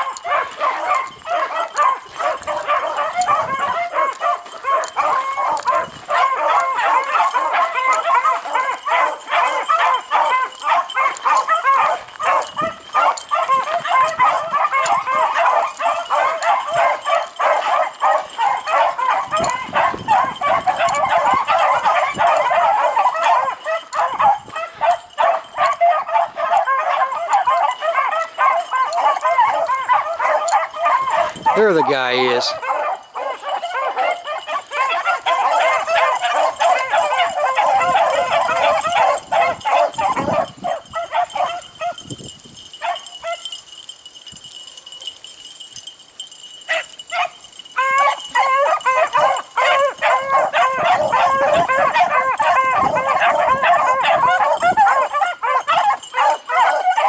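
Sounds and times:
pack of dogs baying: 0.0s - 57.0s.

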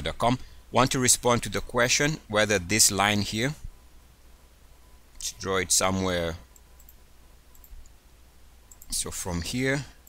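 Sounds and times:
man speaking: 0.0s - 3.7s, 5.2s - 6.5s, 8.9s - 10.0s
low steady hum: 0.0s - 10.0s
computer mouse clicks: 6.5s - 8.0s, 8.7s - 9.0s.

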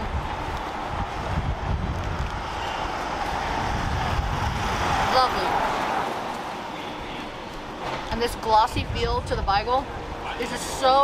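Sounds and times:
road traffic rumble: 0.0s - 11.0s
wind buffeting microphone: 0.0s - 11.0s.

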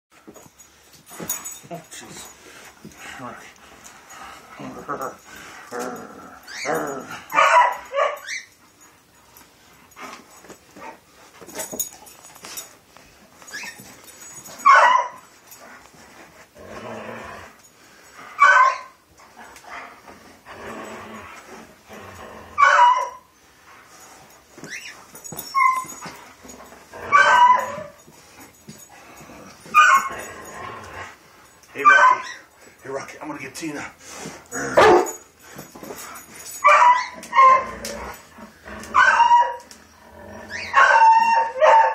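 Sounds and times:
dog whimpering: 6.2s - 7.1s, 40.3s - 41.6s
large dog barking: 6.6s - 8.3s, 34.6s - 35.2s, 40.5s - 41.9s.

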